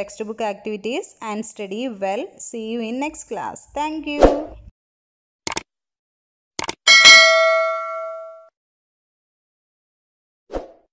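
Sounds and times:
notification bell ding: 6.9s - 8.5s.

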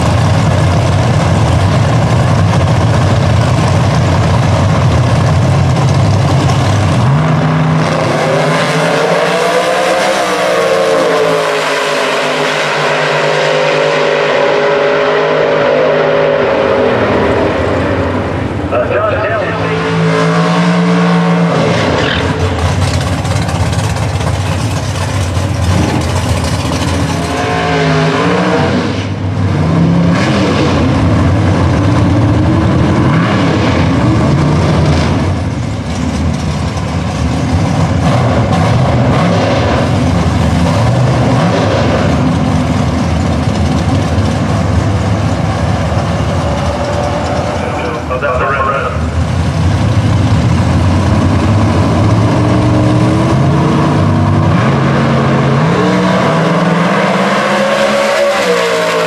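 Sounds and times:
drag car engine revving: 0.0s - 59.0s
drag racing cars launching: 0.0s - 59.0s.

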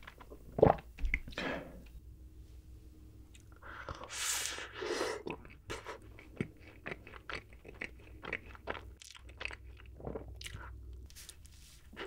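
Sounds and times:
chewing crunchy cookie: 5.2s - 11.2s.

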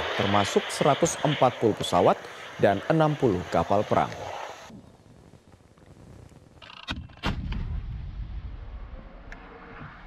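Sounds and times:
faint low outdoor rumble: 0.0s - 10.0s.

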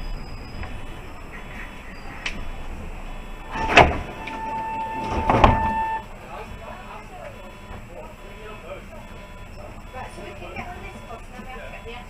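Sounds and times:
bus braking: 0.0s - 12.0s.

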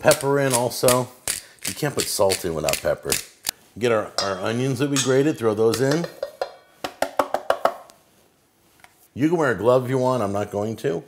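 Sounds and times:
plastic container tapping metal bowl: 4.2s - 7.9s.

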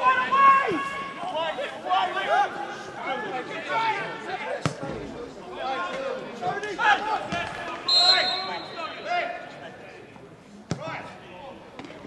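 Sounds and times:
players shouting: 0.0s - 4.8s, 5.5s - 9.5s.

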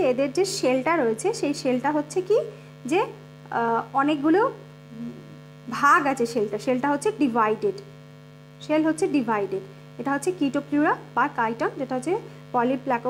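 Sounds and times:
woman talking: 0.0s - 7.9s, 8.6s - 13.0s
low electrical hum: 0.0s - 13.0s.

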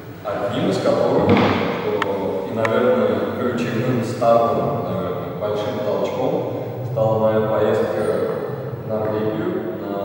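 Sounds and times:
man speaking: 0.2s - 10.0s
sharp knocks: 1.2s - 2.8s.

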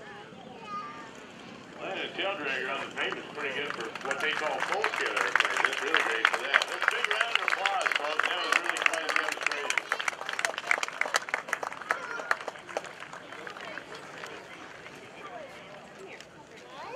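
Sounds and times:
background chatter: 0.0s - 16.9s
spectators clapping: 2.1s - 16.2s.

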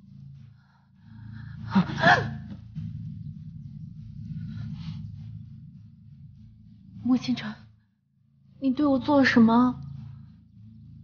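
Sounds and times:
low background music: 0.0s - 11.0s.

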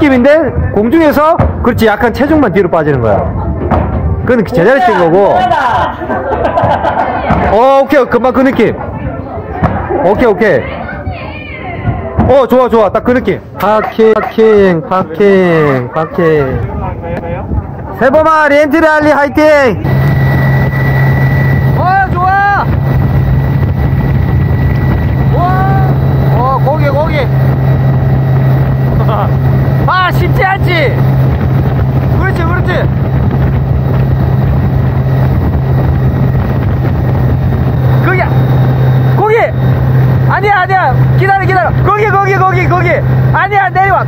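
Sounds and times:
boat engine droning: 19.7s - 44.0s.

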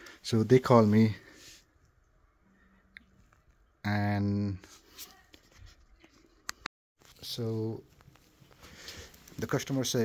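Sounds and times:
person speaking: 0.0s - 1.4s, 9.3s - 10.0s.

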